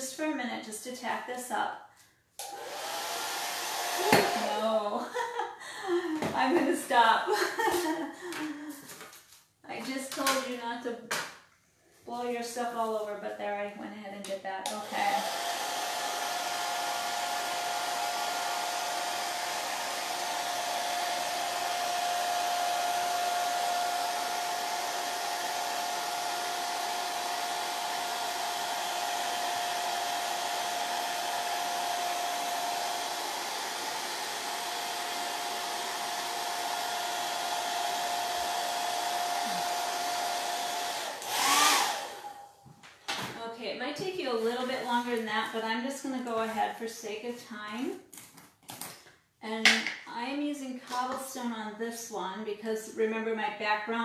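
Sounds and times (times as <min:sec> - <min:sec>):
hair dryer hiss and whine: 0:02.4 - 0:04.8, 0:14.7 - 0:42.6.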